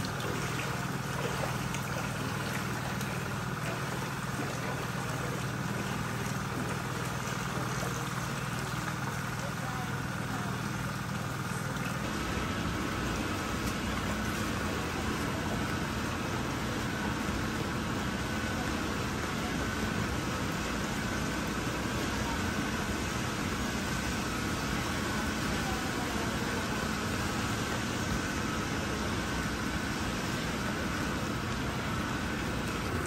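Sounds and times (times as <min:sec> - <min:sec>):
faint machine hum: 0:00.0 - 0:33.0
rain falling on pavement: 0:11.2 - 0:33.0.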